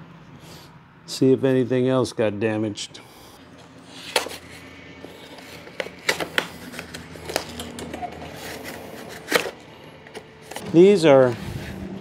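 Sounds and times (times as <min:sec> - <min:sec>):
cardboard tearing: 0:05.2 - 0:09.6.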